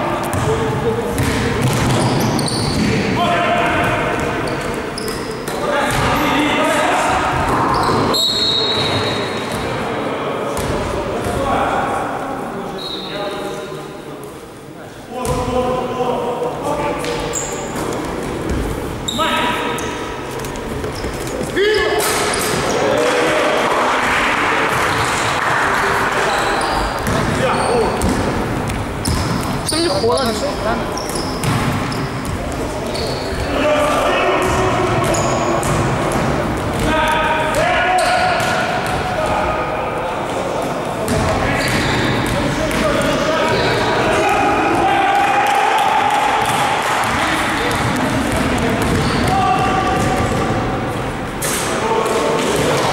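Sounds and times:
voices in hall: 0.0s - 52.9s
basketball bouncing on court: 0.3s - 3.0s, 10.6s - 11.4s, 26.8s - 30.4s, 31.0s - 33.5s, 34.4s - 39.1s, 41.1s - 43.7s, 46.4s - 50.6s
short squeaks: 2.0s - 2.8s, 32.9s - 33.5s
basketball dribbling: 46.4s - 50.3s.

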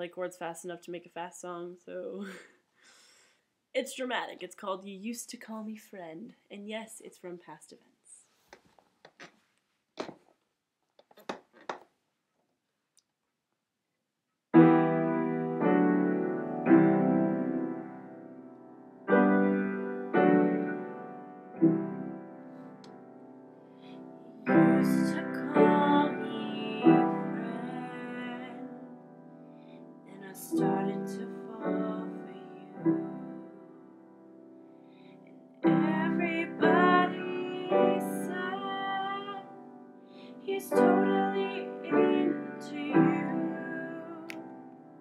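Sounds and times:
slow piano chords: 14.6s - 45.0s
woman singing slow song: 24.4s - 28.9s, 30.1s - 33.4s, 35.6s - 39.7s, 40.4s - 44.5s.

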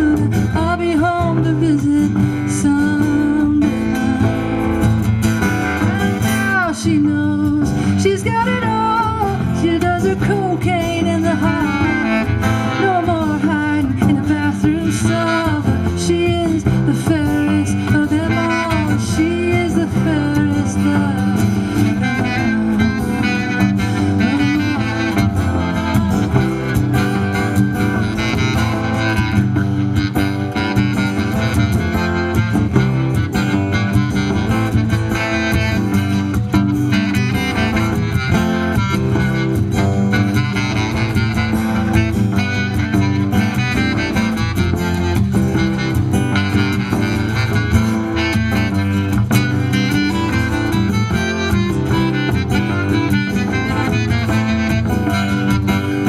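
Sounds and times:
plucked upright bass: 0.0s - 56.0s
strummed acoustic guitar: 0.0s - 56.0s
wavering lead melody: 0.8s - 56.0s.

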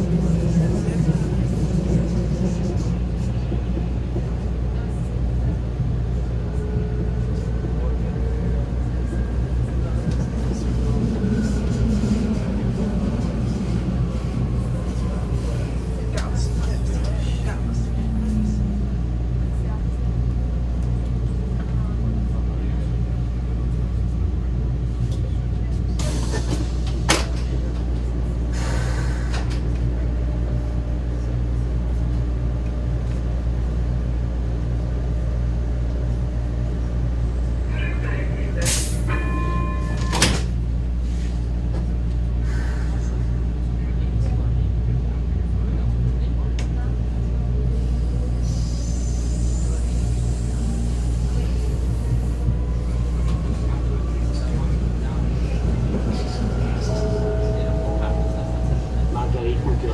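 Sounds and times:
train hum and whines: 0.0s - 59.9s.

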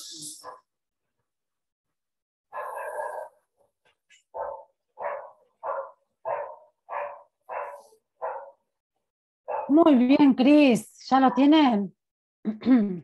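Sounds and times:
dog barking: 0.4s - 0.7s, 2.5s - 8.7s, 9.5s - 9.8s.

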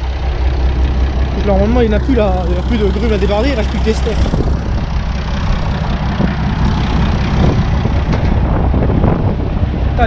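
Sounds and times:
tractor diesel engine idling: 0.0s - 10.0s.

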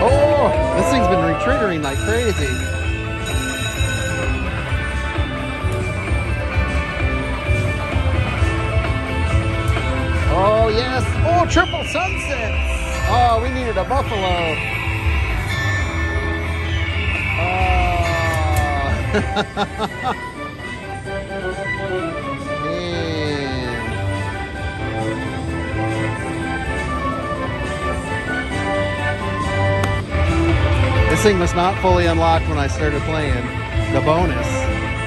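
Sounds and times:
slot machine celebration music: 0.0s - 35.0s
ringing chimes: 0.8s - 6.0s, 11.4s - 20.0s
slot reel sound effects: 11.6s - 19.0s
long falling tone: 12.2s - 19.2s.

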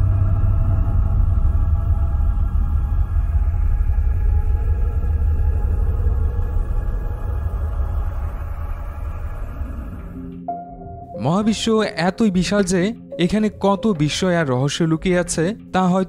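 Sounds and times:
deep steady rumble: 0.0s - 11.6s
faint sustained tones: 0.0s - 12.0s.

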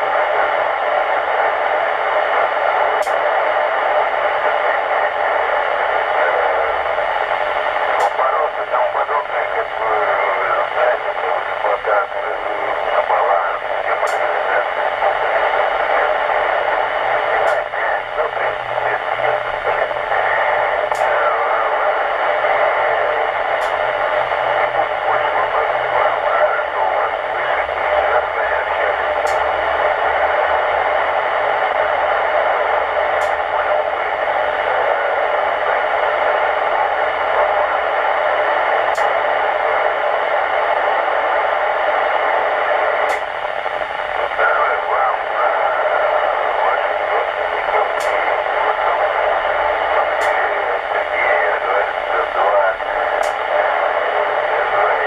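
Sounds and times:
crackly radio noise: 0.0s - 55.0s
faint radio speech: 0.0s - 55.0s
radio receiver hiss: 0.0s - 55.0s.

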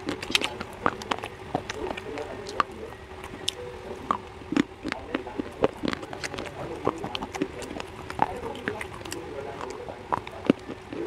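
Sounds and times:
slate pencil being chewed: 0.0s - 11.0s.

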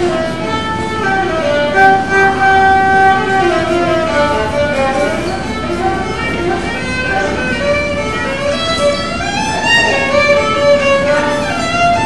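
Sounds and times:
solo violin melody: 0.0s - 12.0s.

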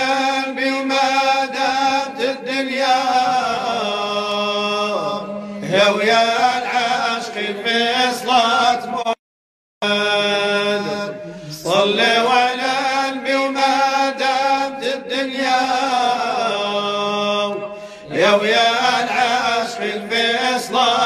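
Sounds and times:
person chanting ornamented phrases: 0.0s - 9.2s, 9.8s - 21.0s.

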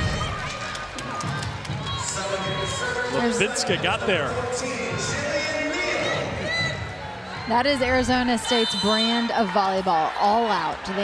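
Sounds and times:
music playing: 0.0s - 10.9s
arena crowd noise: 0.0s - 11.0s.

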